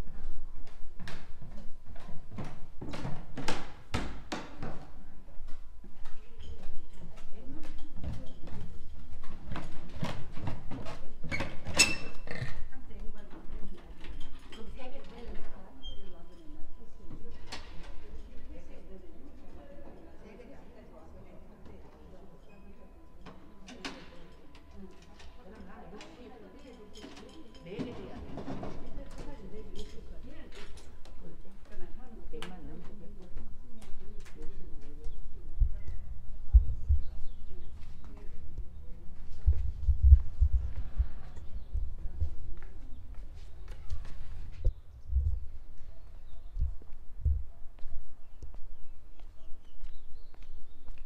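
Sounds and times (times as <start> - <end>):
short low thumps: 36.4 - 37.2, 39.4 - 42.4.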